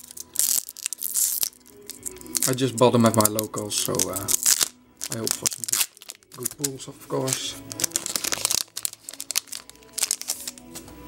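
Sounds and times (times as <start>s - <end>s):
foil wrapper crinkling: 0.0s - 10.9s
faint music: 0.0s - 11.0s.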